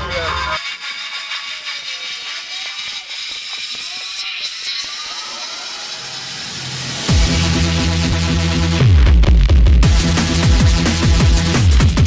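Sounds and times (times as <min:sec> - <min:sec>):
deep bass notes: 0:07.1 - 0:12.0.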